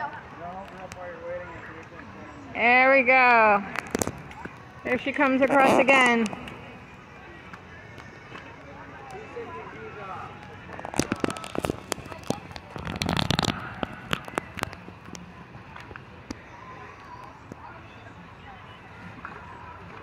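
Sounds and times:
crackly water splashing: 3.2 - 20.0
distant children's voices: 6.9 - 20.0.

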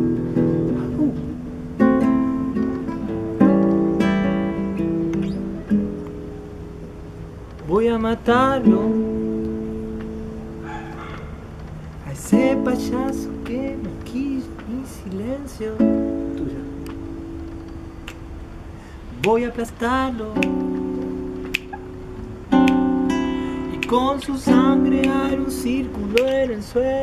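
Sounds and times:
classical guitar chord ringing: 0.0 - 7.4, 20.1 - 27.0
person singing: 22.6 - 27.0.

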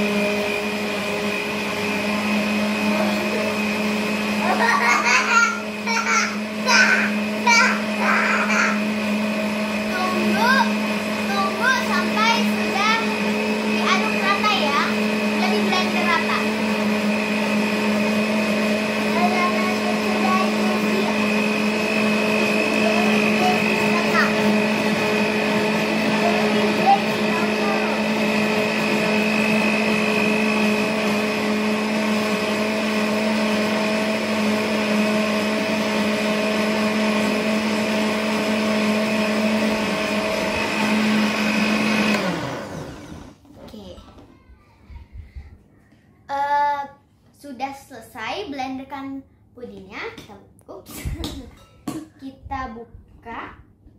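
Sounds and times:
blender motor running: 0.0 - 43.5.

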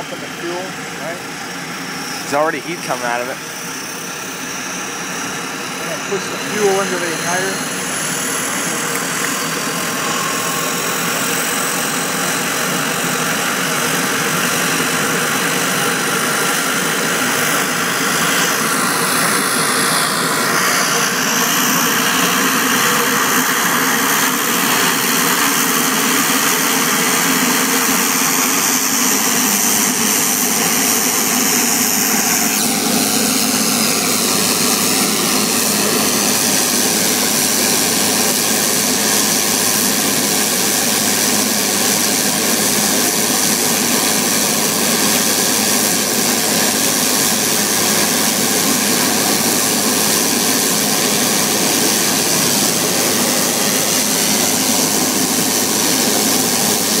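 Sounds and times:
propeller noise: 0.0 - 57.0
turbine engine whine: 0.0 - 57.0.

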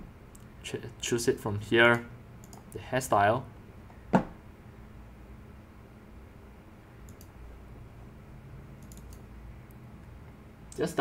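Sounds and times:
low room hum: 0.0 - 11.0
computer mouse clicks: 2.4 - 2.7, 7.0 - 7.4, 8.8 - 9.8.

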